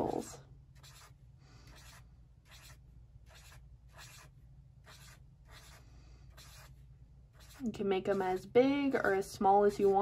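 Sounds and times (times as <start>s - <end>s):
marker scratching on paper: 0.8s - 8.5s, 9.6s - 10.0s.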